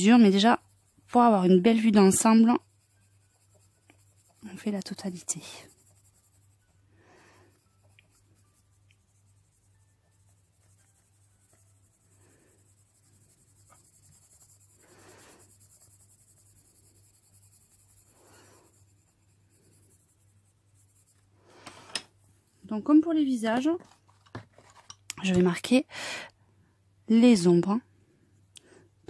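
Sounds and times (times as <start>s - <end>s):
pencil scratching on paper: 0.0s - 23.1s.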